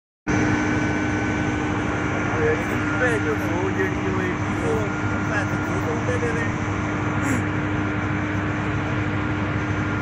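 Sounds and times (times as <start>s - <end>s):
heavy machinery drone: 0.3s - 10.0s.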